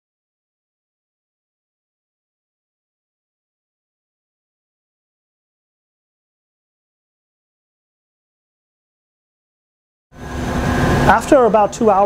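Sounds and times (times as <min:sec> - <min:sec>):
air handling hum: 0:10.2 - 0:12.0.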